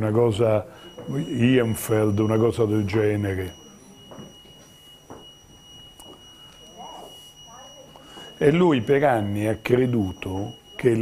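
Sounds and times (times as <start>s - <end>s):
steady high-pitched whine: 0.1s - 11.0s.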